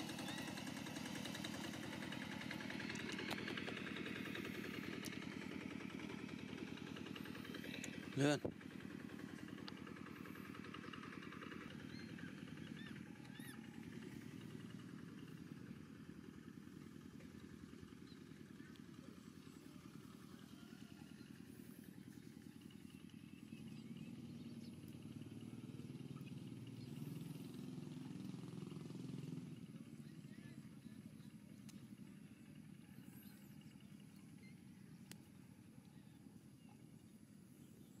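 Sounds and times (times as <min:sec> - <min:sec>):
vehicle engine running: 0:00.0 - 0:38.0.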